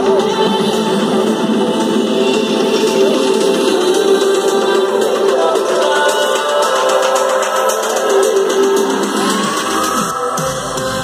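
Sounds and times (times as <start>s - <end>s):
loud electronic house music: 0.0s - 11.0s.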